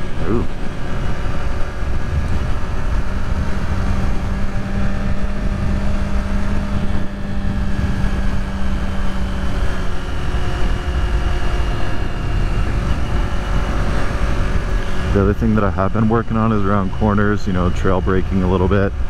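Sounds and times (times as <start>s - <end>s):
motorcycle engine cruising: 0.0s - 19.0s
steady drone: 0.0s - 19.0s
wind rush on microphone: 0.0s - 19.0s.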